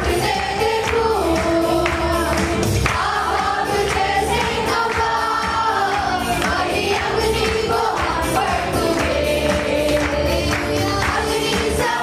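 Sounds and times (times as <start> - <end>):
backing singers: 0.0 - 12.0
women singing lead: 0.0 - 12.0.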